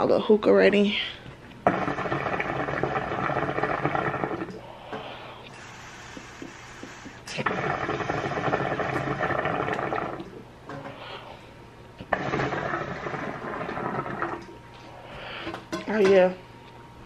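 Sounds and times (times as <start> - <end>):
hookah water bubbling: 1.5 - 11.3, 12.0 - 14.8.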